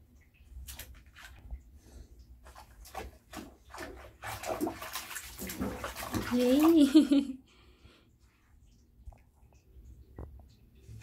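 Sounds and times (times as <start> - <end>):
bathwater splashing in a tub: 0.0 - 7.4.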